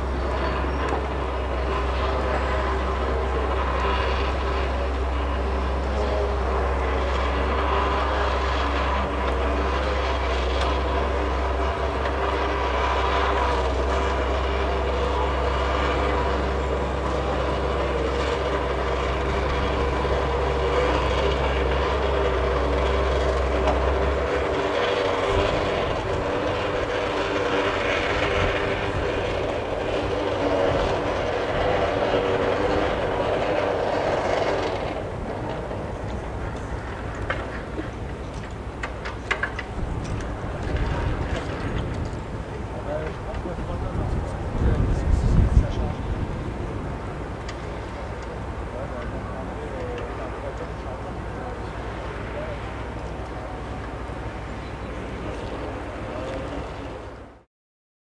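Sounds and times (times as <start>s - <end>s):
engine and winch drone: 0.0s - 57.5s.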